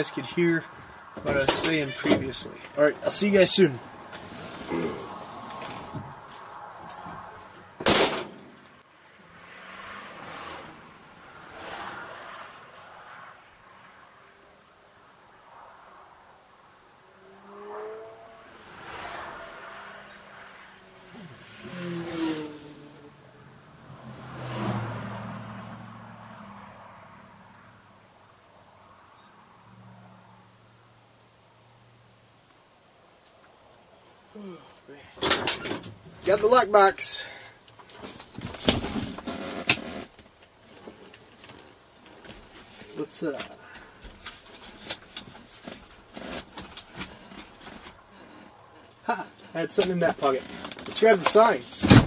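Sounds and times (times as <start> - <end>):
road vehicles passing by: 0.0 - 52.0.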